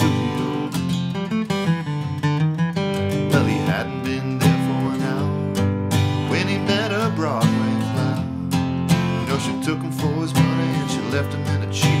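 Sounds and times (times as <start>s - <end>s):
man singing: 0.0s - 1.2s, 3.1s - 12.0s
acoustic guitar strumming: 0.0s - 12.0s.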